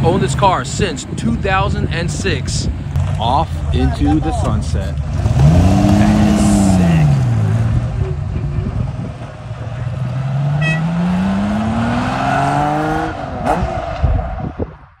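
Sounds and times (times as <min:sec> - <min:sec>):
car engine accelerating: 0:03.0 - 0:14.7.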